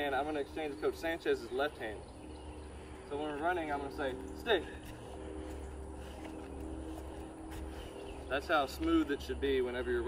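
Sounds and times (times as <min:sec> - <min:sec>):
distant motor humming: 0:00.0 - 0:10.0.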